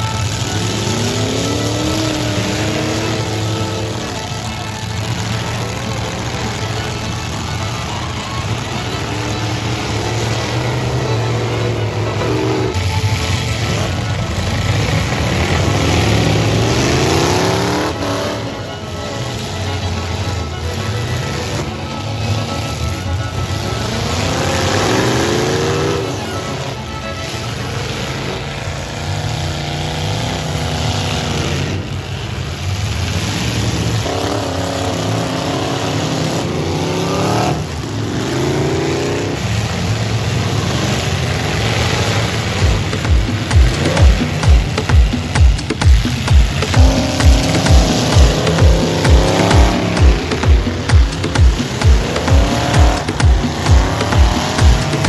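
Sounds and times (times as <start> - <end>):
arena crowd din: 0.0 - 55.0
car engines revving: 0.0 - 55.0
music with thumping beat: 42.5 - 55.0.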